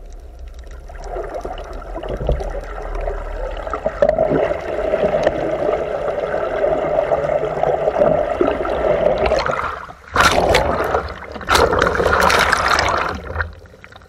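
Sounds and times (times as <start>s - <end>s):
underwater current rushing: 0.9s - 13.7s.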